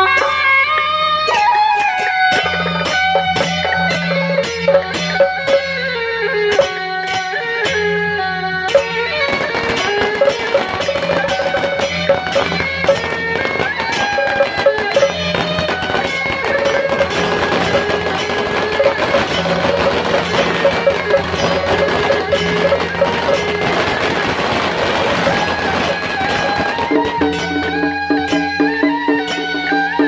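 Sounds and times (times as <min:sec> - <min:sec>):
percussion: 0:00.0 - 0:30.0
shawms playing loud melody: 0:00.0 - 0:30.0
sharp cracks: 0:08.7 - 0:27.8.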